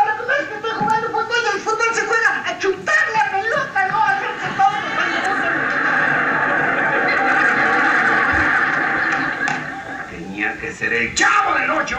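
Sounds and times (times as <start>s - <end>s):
audience laughter through tv speaker: 4.2s - 10.3s.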